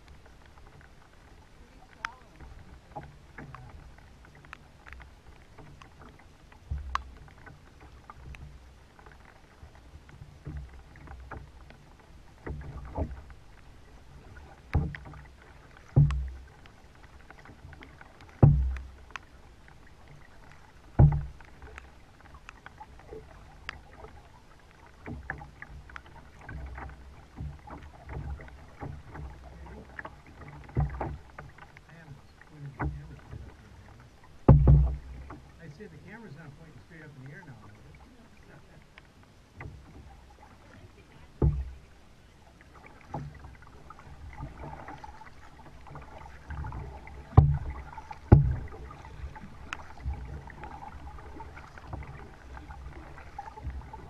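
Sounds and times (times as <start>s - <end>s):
kayak paddling: 0.0s - 54.0s
hollow knocks on plastic hull: 15.9s - 16.4s, 18.3s - 18.9s, 21.0s - 21.3s, 34.4s - 35.4s, 41.4s - 41.7s, 45.9s - 52.3s.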